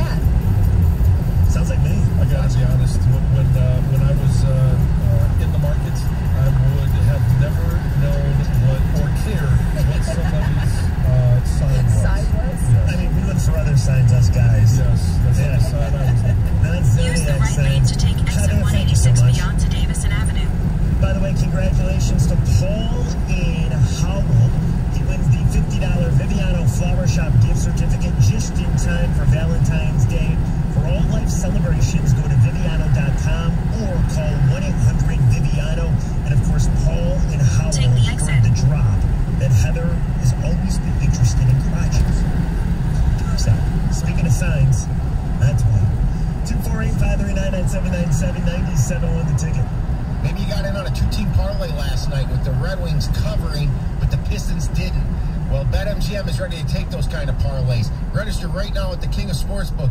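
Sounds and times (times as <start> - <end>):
road and tyre rumble: 0.0 - 59.9
muffled radio talk: 1.4 - 59.9.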